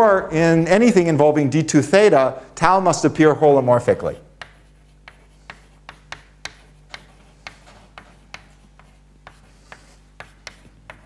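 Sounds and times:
chalk writing on chalkboard: 0:04.3 - 0:11.0.

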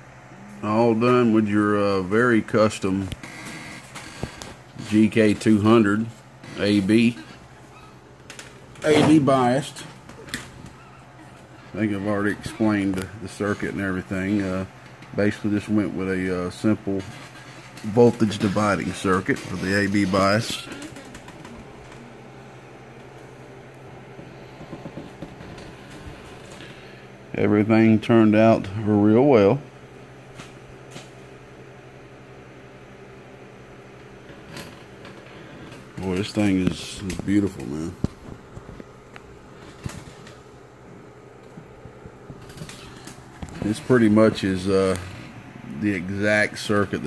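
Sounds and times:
low room hum: 0:00.0 - 0:47.0.

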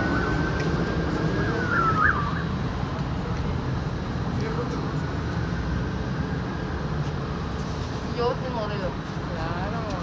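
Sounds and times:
city street rumble: 0:00.0 - 0:10.0.

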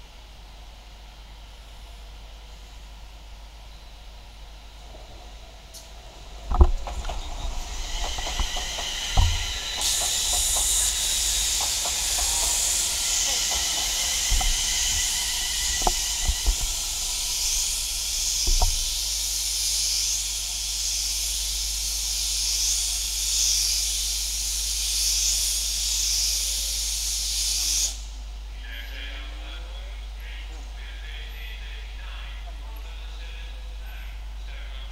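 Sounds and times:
train air hiss: 0:01.5 - 0:29.6
camera handling knocks: 0:18.5 - 0:18.9.

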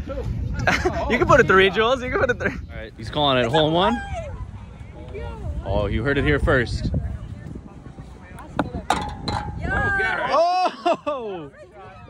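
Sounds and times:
voices exclaiming: 0:03.4 - 0:05.6, 0:09.6 - 0:12.0.

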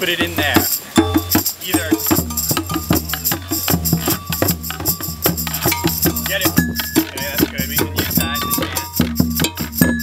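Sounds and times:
bells struck with sticks: 0:00.0 - 0:10.0
drum struck with mallet: 0:00.0 - 0:10.0
hand drum: 0:00.0 - 0:10.0.

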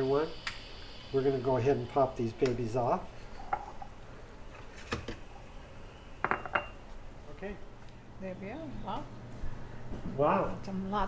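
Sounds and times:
ceramic cups clinking: 0:06.2 - 0:06.8.

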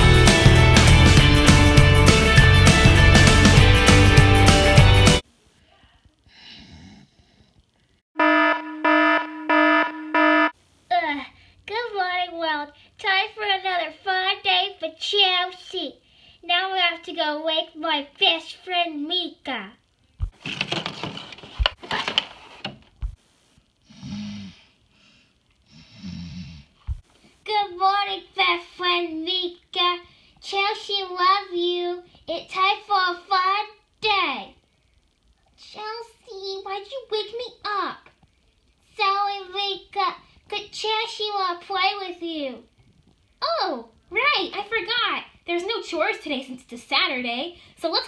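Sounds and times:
person snoring: 0:06.3 - 0:07.6, 0:23.8 - 0:26.8
alarm clock beeping: 0:08.2 - 0:10.5.

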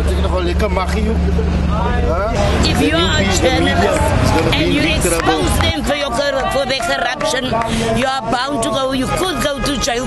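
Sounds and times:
people talking: 0:00.0 - 0:10.0
steady low rumble: 0:01.0 - 0:08.0.

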